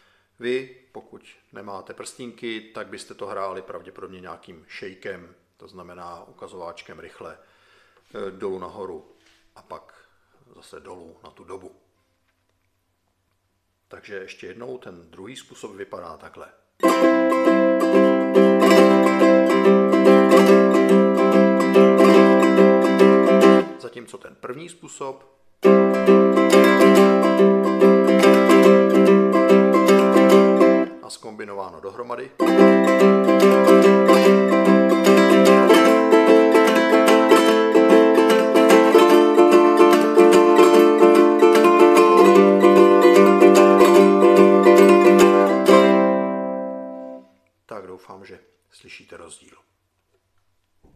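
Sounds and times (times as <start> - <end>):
ukulele strummed with fingerpicks: 16.8 - 23.8, 25.6 - 31.0, 32.4 - 47.2.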